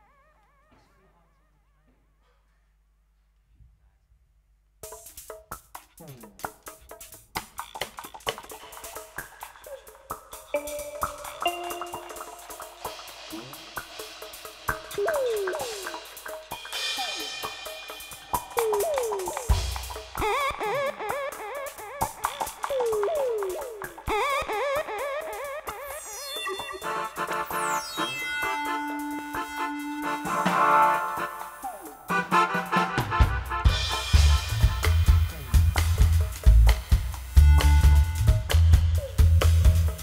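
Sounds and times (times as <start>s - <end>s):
live electronic music: 6.1s - 40.0s.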